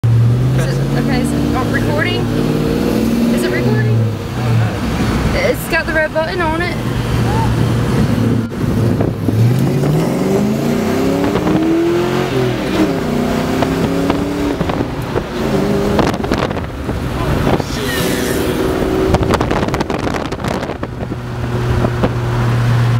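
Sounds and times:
car engine accelerating: 0.0s - 22.9s
wind buffeting microphone: 1.1s - 22.9s.

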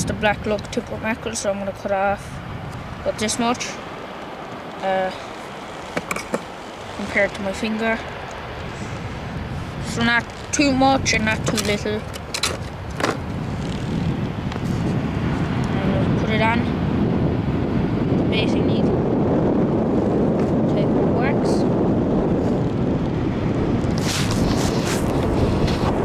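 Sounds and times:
wind buffeting microphone: 0.0s - 26.0s
microphone handling clicks: 5.8s - 7.1s, 10.0s - 15.0s.

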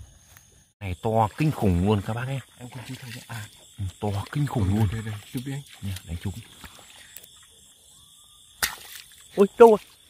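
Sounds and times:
hand slapping into grass: 8.6s - 9.8s.

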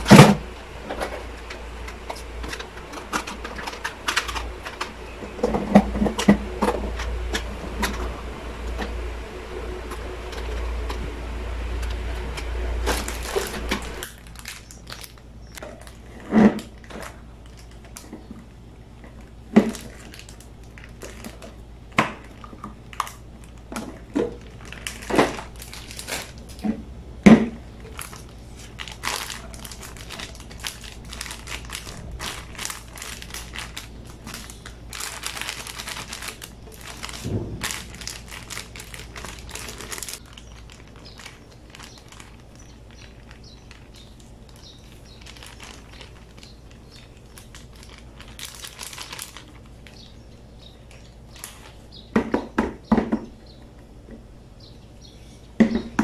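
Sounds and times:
plastic lids clattering and scraping: 0.0s - 9.0s
plastic bag crinkling: 0.0s - 18.3s, 19.0s - 26.9s, 27.6s - 51.9s
steady low hum: 0.0s - 52.2s
dull thump: 37.3s - 37.7s.

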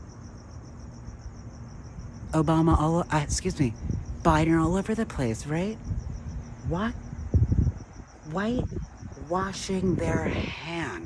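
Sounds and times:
faint low background rumble: 0.0s - 11.0s
insects chirping trill: 0.0s - 11.0s.

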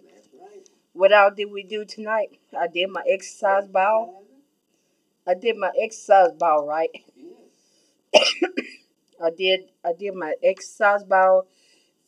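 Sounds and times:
sharp cough: 8.2s - 8.9s.

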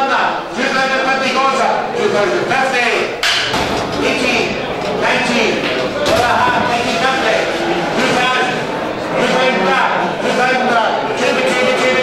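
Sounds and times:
auctioneer's selling chant: 0.0s - 12.0s.

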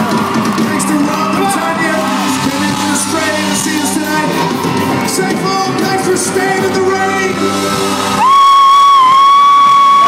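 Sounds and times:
concert music: 0.0s - 10.0s.

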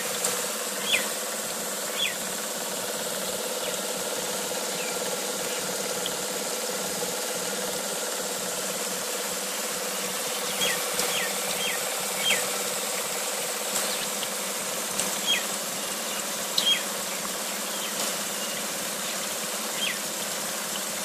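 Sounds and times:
generator buzzing hum: 0.0s - 21.0s.

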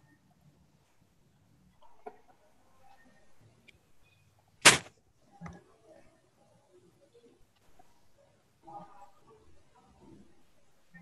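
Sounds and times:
rustling: 4.6s - 4.9s
short sharp burst of noise: 4.6s - 4.9s.

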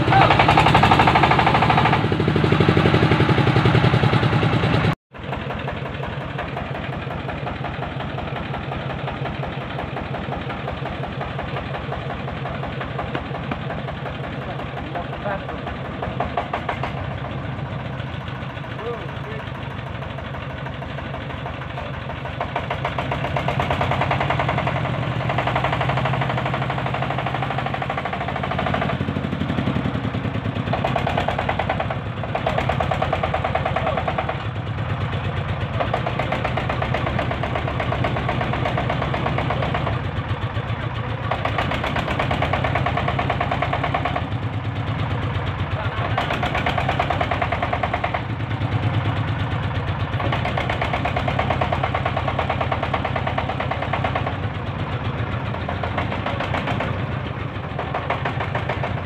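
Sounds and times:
diesel engine knocking chug: 0.0s - 59.0s.

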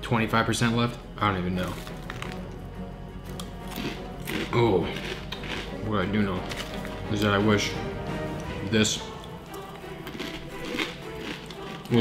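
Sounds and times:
background music: 0.0s - 12.0s
crunchy snack being chewed: 1.7s - 2.5s, 3.3s - 7.0s, 9.2s - 12.0s.

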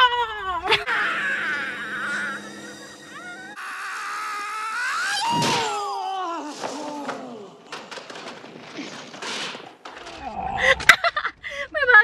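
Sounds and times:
shrill martial arts battle cries: 0.4s - 7.6s.

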